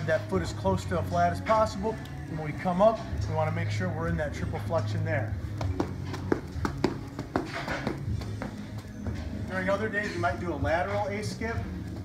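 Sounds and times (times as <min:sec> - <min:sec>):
background music: 0:00.0 - 0:12.0
sneakers tapping on rubber floor: 0:05.5 - 0:09.3.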